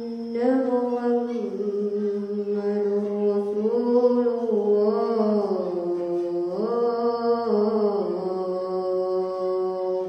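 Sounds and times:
boy chanting call to prayer: 0.0 - 10.0.

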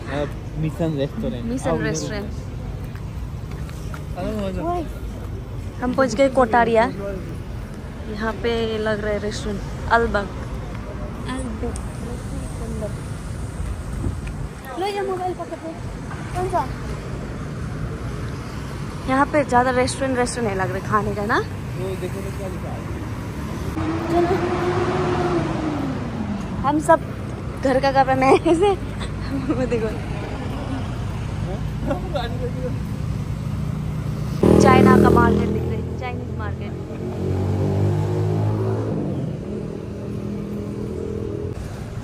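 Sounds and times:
street traffic: 0.0 - 42.0
vehicle passing close by: 21.8 - 27.0, 33.2 - 41.8.

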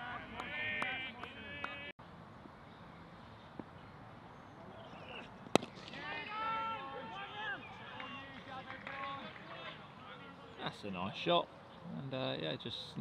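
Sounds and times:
players calling: 0.0 - 1.9, 4.5 - 11.6
cricket bat striking ball: 5.4 - 6.0.

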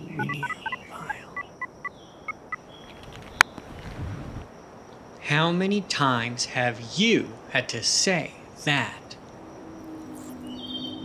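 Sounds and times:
phone keypad beeps: 0.2 - 1.7.

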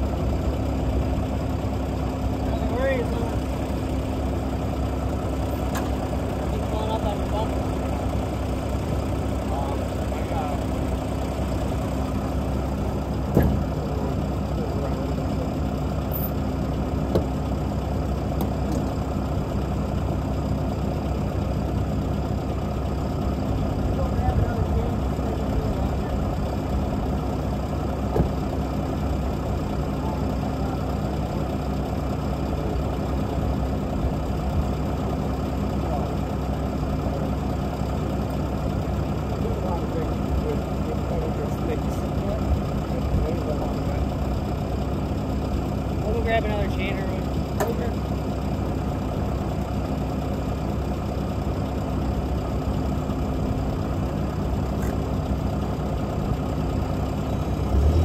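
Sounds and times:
diesel engine idling: 0.0 - 58.0.

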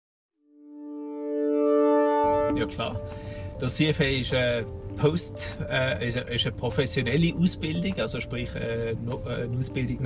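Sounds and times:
sustained electronic tone: 0.5 - 3.1.

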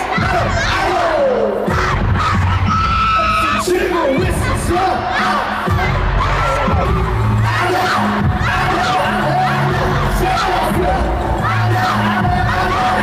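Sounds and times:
crowd screaming and cheering: 0.0 - 13.0
loud live pop music: 0.0 - 13.0
bass line: 1.7 - 13.0.

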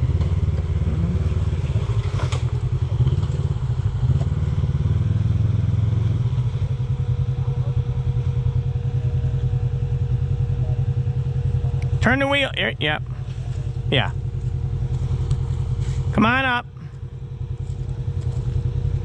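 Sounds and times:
engine idling: 0.0 - 19.0.

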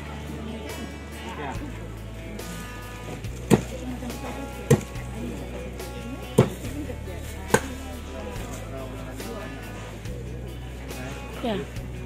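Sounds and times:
cleaver chopping on wooden block: 3.5 - 3.7, 6.4 - 6.6.

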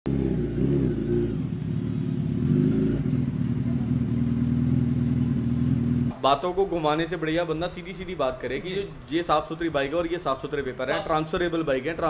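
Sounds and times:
motorcycle engine revving: 0.1 - 6.1.

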